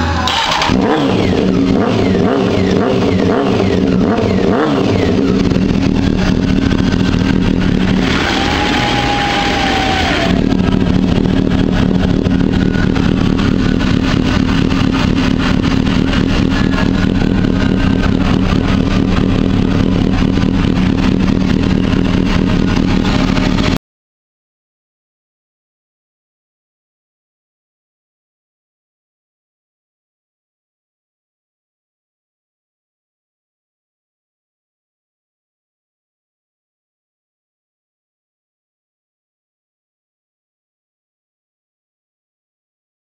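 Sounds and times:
motorcycle engine revving and idling: 0:00.0 - 0:23.8.

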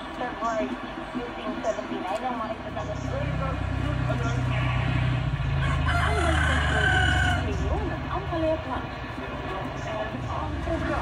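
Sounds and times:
low steady rumble: 0:00.0 - 0:11.0
rooster crowing: 0:05.5 - 0:07.8.

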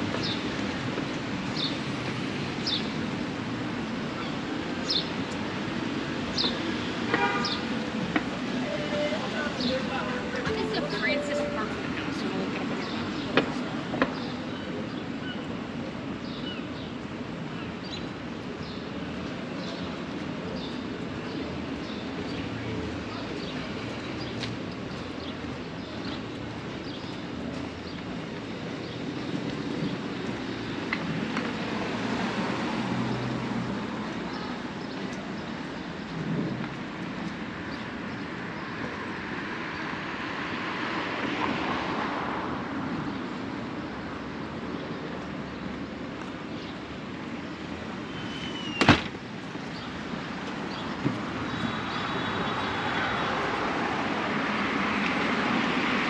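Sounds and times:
traffic hum: 0:00.0 - 0:56.0
vehicles passing: 0:00.0 - 0:56.0.

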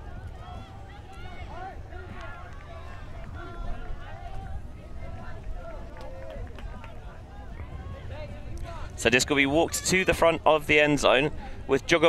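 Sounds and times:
wind rumble on microphone: 0:00.0 - 0:11.7.

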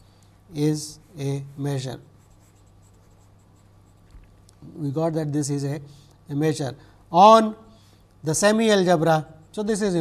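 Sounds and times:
low steady hum: 0:00.0 - 0:10.0
marker writing on paper: 0:02.2 - 0:04.2.

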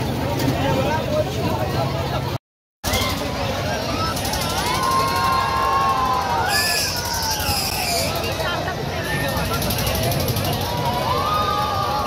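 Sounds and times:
fairground ride rumble: 0:00.0 - 0:12.0
voices of riders and crowd: 0:00.0 - 0:12.0.

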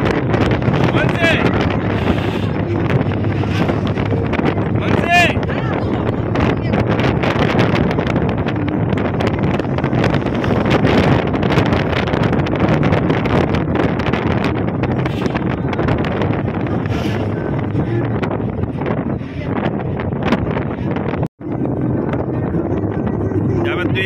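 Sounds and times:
jeep engine and road noise: 0:00.0 - 0:24.0
wind buffeting microphone: 0:00.0 - 0:24.0.

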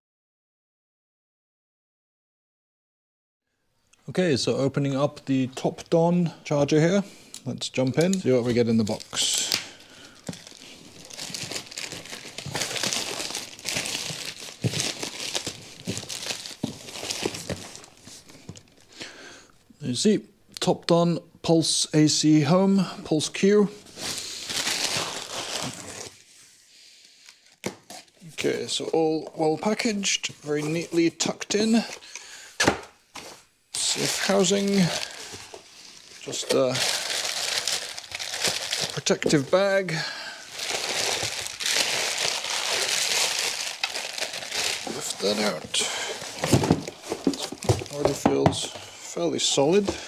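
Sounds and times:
plastic wrapping crinkling: 0:08.0 - 0:18.9, 0:23.8 - 0:26.3, 0:33.2 - 0:50.0.

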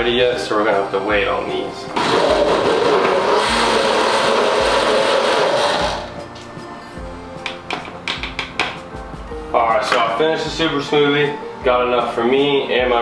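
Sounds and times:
guitar music: 0:01.1 - 0:12.0
blender running: 0:02.0 - 0:06.2.

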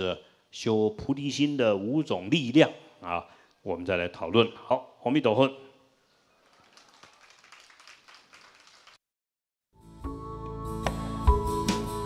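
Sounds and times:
music: 0:09.7 - 0:12.0.

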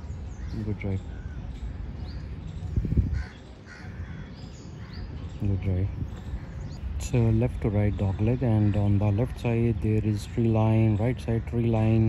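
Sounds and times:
crow cawing: 0:00.3 - 0:01.5, 0:03.1 - 0:05.1.

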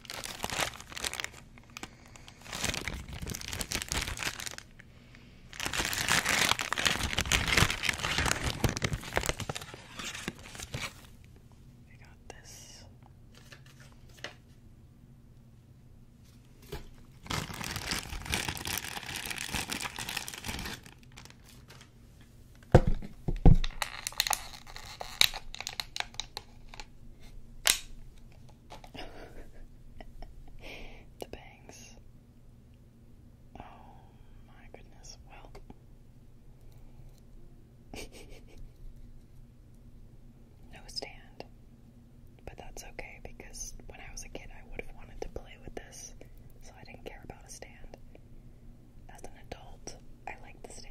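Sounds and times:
paper handling: 0:00.0 - 0:04.6, 0:05.6 - 0:11.2, 0:13.3 - 0:14.5, 0:16.6 - 0:21.9
soft whispering: 0:11.9 - 0:13.0, 0:31.0 - 0:32.0, 0:33.6 - 0:35.8, 0:40.6 - 0:41.5, 0:42.4 - 0:48.2, 0:49.1 - 0:50.9.

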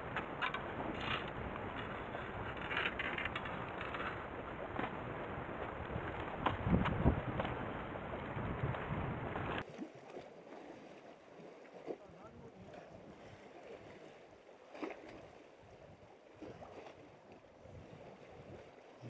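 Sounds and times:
wind rumbling on microphone: 0:00.0 - 0:09.6, 0:15.2 - 0:18.8
wind and sea hush: 0:00.0 - 0:19.0.

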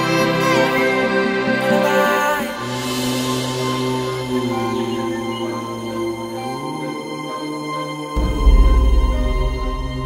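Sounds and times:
music of sustained tones: 0:00.0 - 0:10.0
deep bass: 0:08.2 - 0:10.0.

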